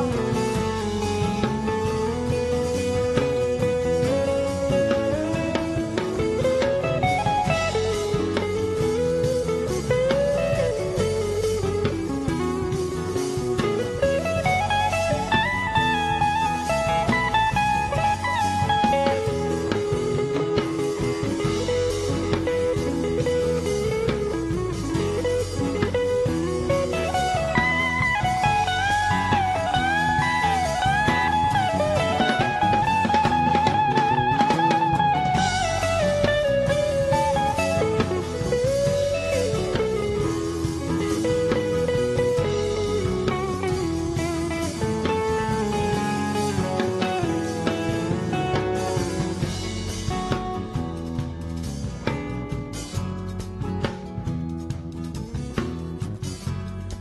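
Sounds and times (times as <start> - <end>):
bass guitar: 0.0 - 57.0
drum kit: 0.0 - 57.0
electric guitar lead with bent notes: 0.0 - 57.0.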